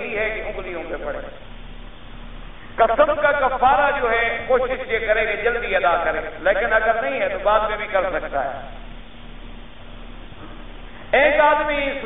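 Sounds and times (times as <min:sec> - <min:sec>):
man lecturing: 0:00.0 - 0:01.4, 0:02.8 - 0:08.8, 0:11.1 - 0:12.0
faint low hum: 0:00.0 - 0:12.0
recording hiss: 0:00.0 - 0:12.0.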